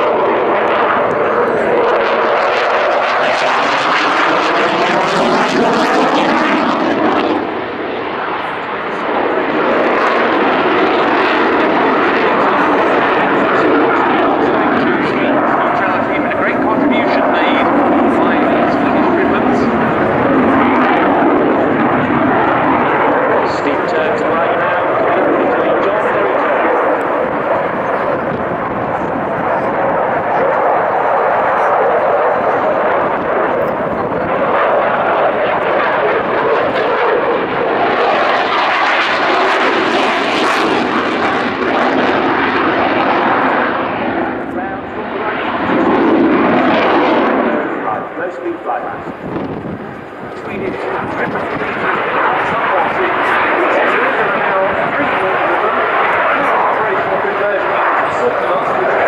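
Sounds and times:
jet engine roar: 0:00.0 - 0:59.0.

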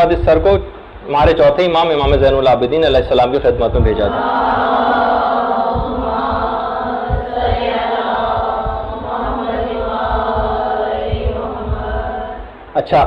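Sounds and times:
low thumps: 0:00.0 - 0:13.0
voices chanting held notes: 0:02.0 - 0:13.0.

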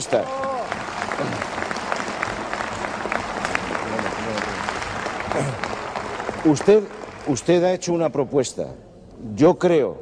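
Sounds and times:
crowd clapping: 0:00.0 - 0:07.9.

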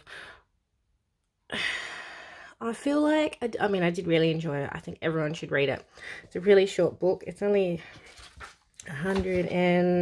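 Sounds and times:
woman sighing: 0:01.5 - 0:02.4.

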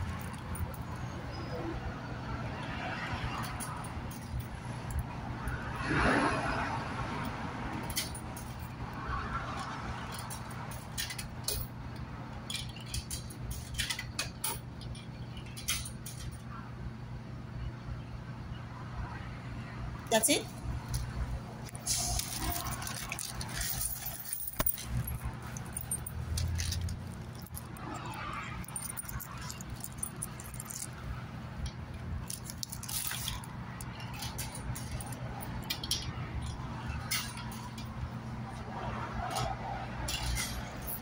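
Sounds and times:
coins clinking: 0:00.0 - 0:01.2, 0:03.4 - 0:05.0, 0:07.8 - 0:08.8, 0:09.5 - 0:11.7, 0:12.5 - 0:16.4, 0:21.7 - 0:31.2, 0:31.8 - 0:38.0, 0:40.1 - 0:41.0.

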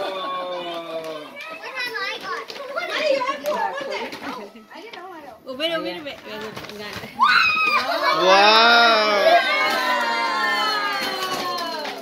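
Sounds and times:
children's excited chatter: 0:00.0 - 0:06.2, 0:07.1 - 0:12.0.

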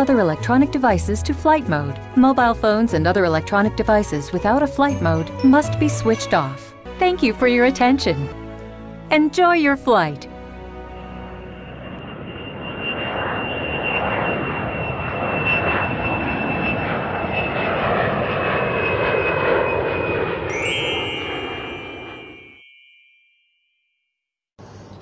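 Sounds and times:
jet engine roar and whine: 0:10.9 - 0:22.5
bright chime: 0:20.5 - 0:23.5.

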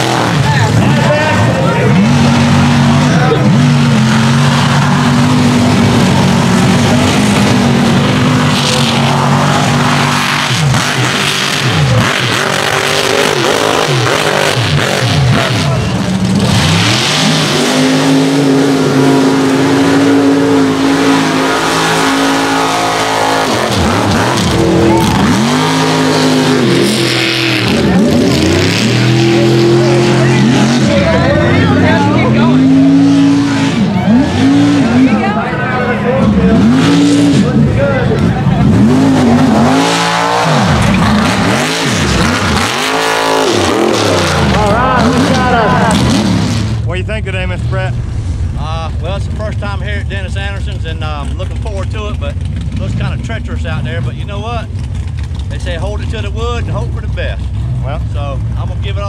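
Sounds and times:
truck engines revving: 0:00.0 - 0:59.0.

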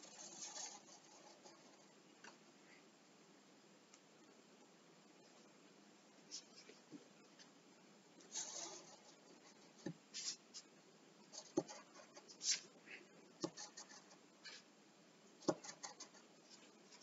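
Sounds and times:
pencil scratching on paper: 0:00.0 - 0:01.9, 0:08.3 - 0:10.6, 0:11.3 - 0:12.8, 0:13.4 - 0:14.7, 0:15.4 - 0:17.0.

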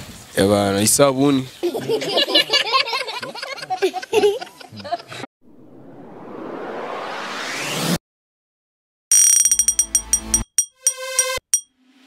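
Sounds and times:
chime-like jingle strikes: 0:09.1 - 0:11.7
pings: 0:09.1 - 0:11.8.

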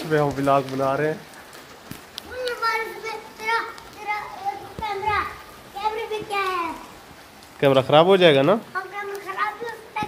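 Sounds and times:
children calling out: 0:02.2 - 0:07.0, 0:08.7 - 0:10.0.

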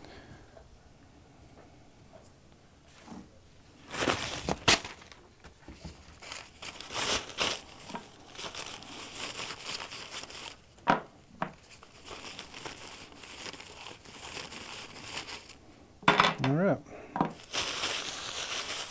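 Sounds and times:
paper towel crinkling: 0:03.8 - 0:10.8, 0:11.5 - 0:15.6, 0:17.3 - 0:18.9.

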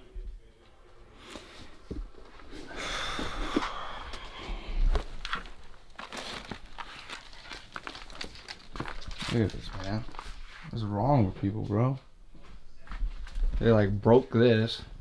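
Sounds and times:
footsteps: 0:00.2 - 0:15.0
paper and clothing rustling: 0:04.9 - 0:11.5.

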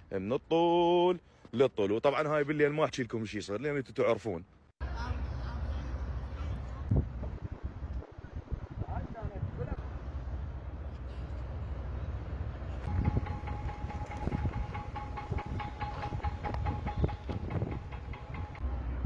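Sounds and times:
low outdoor rumble: 0:04.8 - 0:19.0.

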